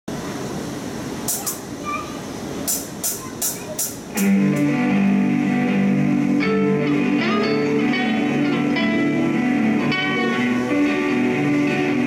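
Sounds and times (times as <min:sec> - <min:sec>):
murmur of voices: 0:01.3 - 0:04.4.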